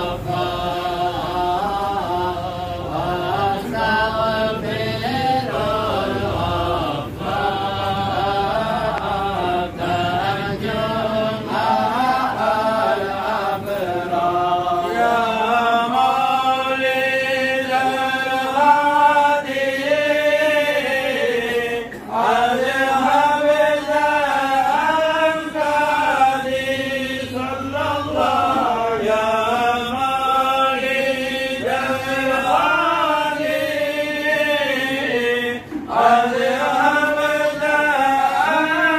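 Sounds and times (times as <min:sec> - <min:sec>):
men chanting together: 0:00.0 - 0:38.9.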